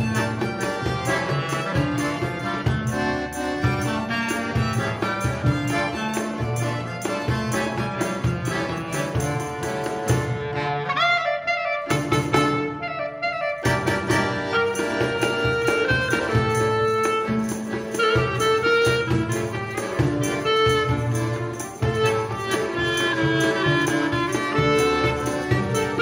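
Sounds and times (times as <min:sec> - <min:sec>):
cello: 0:00.0 - 0:11.2, 0:13.6 - 0:26.0
accordion: 0:00.0 - 0:26.0
clarinet: 0:00.0 - 0:26.0
violin: 0:00.0 - 0:26.0.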